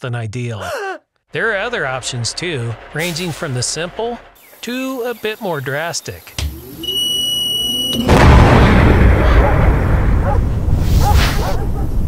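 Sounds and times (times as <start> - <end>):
high electronic tone: 1.4 - 8.3
explosion with deep rumble: 8.0 - 11.0.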